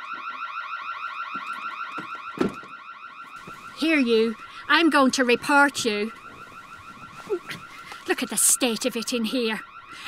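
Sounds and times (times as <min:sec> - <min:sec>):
electronic alarm warbling: 0:00.0 - 0:10.0.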